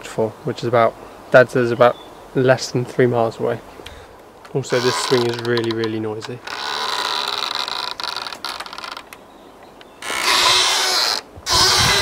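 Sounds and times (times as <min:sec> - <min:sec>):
rope swing creaking: 0:04.5 - 0:12.0.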